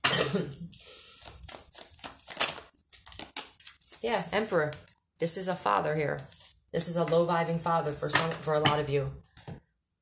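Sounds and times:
cards being shuffled: 0.7 - 5.0.

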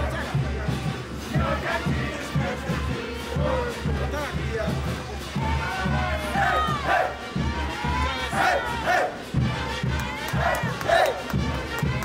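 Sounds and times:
dancers shouting: 5.6 - 7.2, 7.9 - 9.2.

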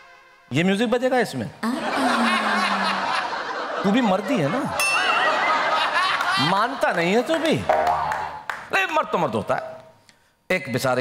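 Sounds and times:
audience laughter: 1.7 - 7.5.

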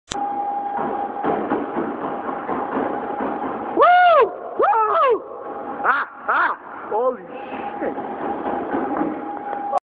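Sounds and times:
treadmill belt noise: 0.1 - 9.8
treadmill motor whine: 0.1 - 9.8
rising-and-falling yells: 3.8 - 6.6.

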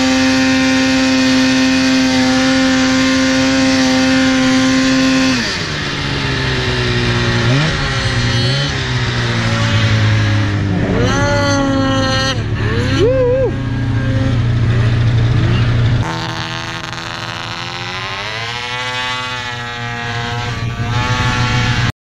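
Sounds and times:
snowmobile engine revving: 0.0 - 22.0.

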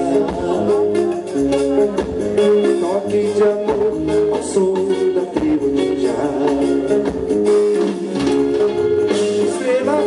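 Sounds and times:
drum kit: 0.0 - 10.0
electric guitars: 0.0 - 10.0
hand percussion: 0.0 - 10.0
person singing: 0.0 - 10.0.

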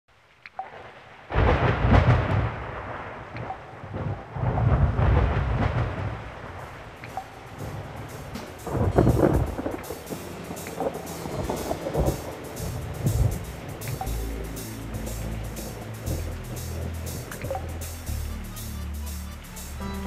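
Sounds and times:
steady rain: 0.1 - 20.0
thunder rumbling: 0.8 - 19.0
loud deep thunderclaps: 1.3 - 14.1.

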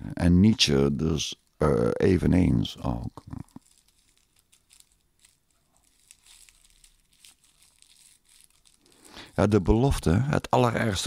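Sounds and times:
faint crackles and rustles: 2.8 - 10.0.

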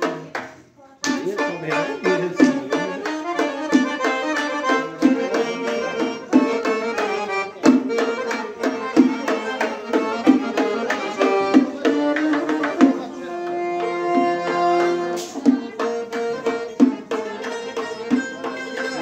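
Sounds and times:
accordion playing chords and melody: 1.0 - 19.0
hand-struck frame drums: 1.0 - 19.0.

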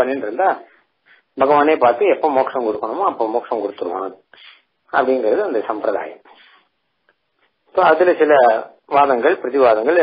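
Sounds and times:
man lecturing: 0.0 - 6.6, 7.6 - 10.0.

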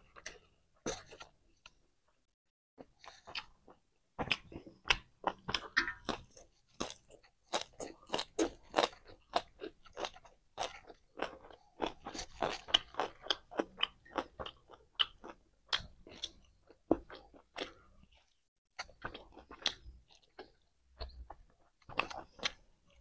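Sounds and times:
chewing and crunching food: 0.0 - 2.2, 2.8 - 23.0.

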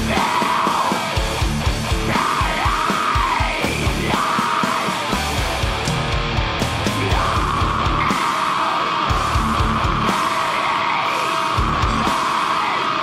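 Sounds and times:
pounding drums: 0.0 - 12.8
distorted guitars: 0.0 - 13.0
harsh yelled vocals: 0.0 - 13.0.

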